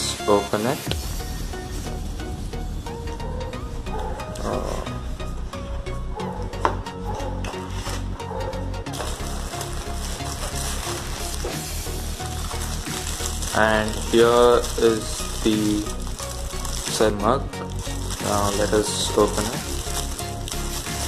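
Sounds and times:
background music: 0:00.0 - 0:21.0
cardboard and plastic crinkling: 0:08.9 - 0:21.0.

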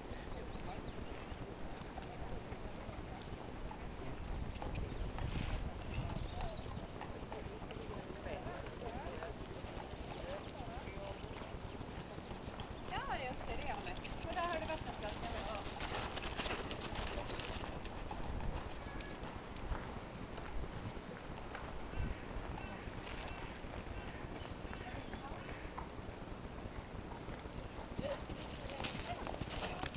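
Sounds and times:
horse hoofbeats on sand: 0:00.6 - 0:29.9.

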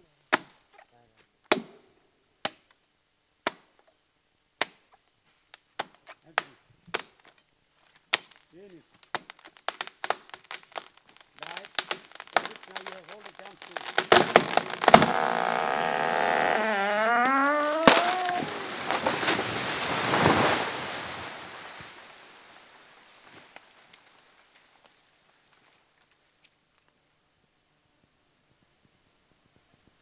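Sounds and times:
tree trunk cracking and splintering: 0:08.1 - 0:25.0
tree crashing through branches: 0:09.1 - 0:24.5
man shouting: 0:17.4 - 0:18.7.

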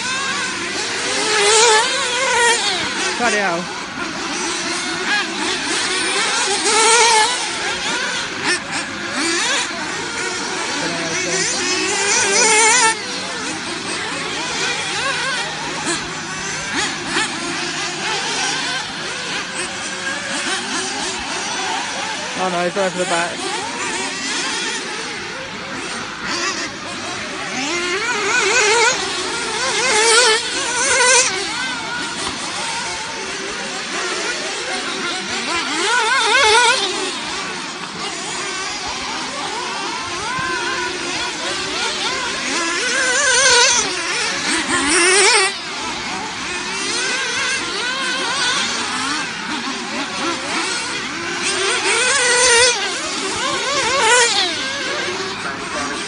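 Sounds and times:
rc car motors whining: 0:00.0 - 0:56.0.

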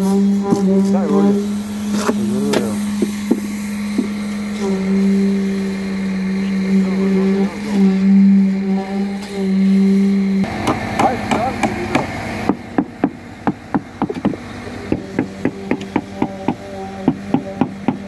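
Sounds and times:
concrete vibrator humming: 0:00.0 - 0:18.0.

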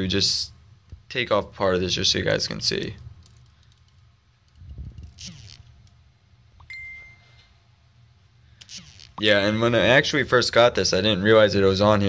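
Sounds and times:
fingernail scratching plastic film: 0:04.6 - 0:05.8
short high beep: 0:06.6 - 0:07.5.

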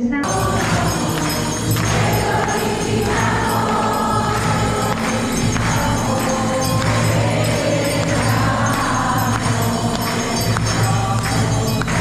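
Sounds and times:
choir singing a hymn: 0:00.2 - 0:12.0
instrumental accompaniment: 0:00.2 - 0:12.0.

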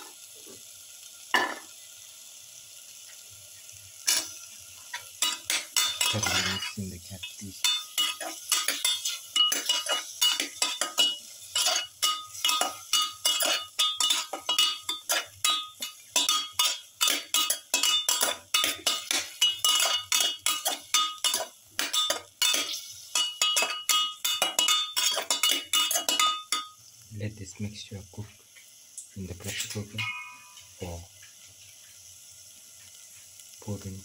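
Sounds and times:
spoon scraping metal pot: 0:05.2 - 0:26.7
pot ringing faintly: 0:05.2 - 0:26.8, 0:29.8 - 0:31.0.

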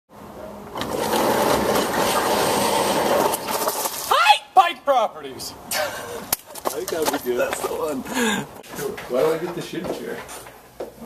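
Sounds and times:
roll-up truck door rattling open: 0:00.8 - 0:04.1.

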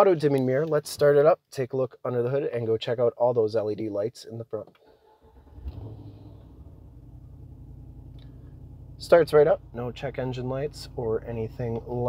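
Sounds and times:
engine starting and idling: 0:04.8 - 0:12.0.

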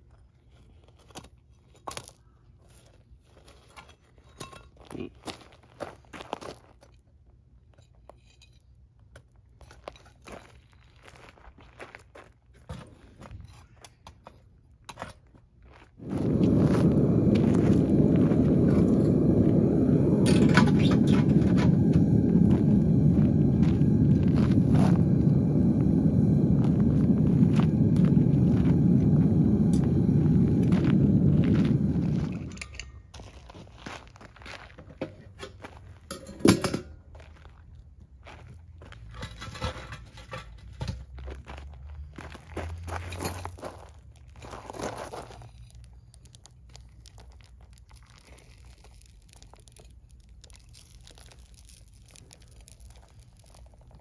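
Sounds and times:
footsteps on gravel: 0:09.8 - 0:20.2, 0:21.2 - 0:36.1, 0:41.0 - 0:54.0
gas burner rushing: 0:16.0 - 0:33.0.

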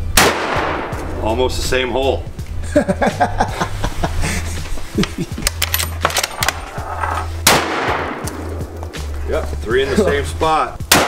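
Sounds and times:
background music with bass line: 0:00.0 - 0:11.0
rifle shots: 0:00.1 - 0:01.0, 0:07.4 - 0:08.5
man laughing: 0:02.6 - 0:05.6, 0:09.8 - 0:10.5.

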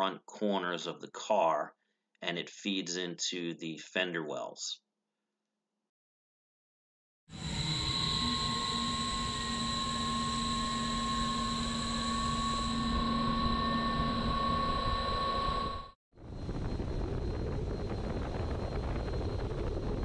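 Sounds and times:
steady whining tones: 0:07.3 - 0:20.0
wind tunnel airflow rushing: 0:16.2 - 0:20.0.

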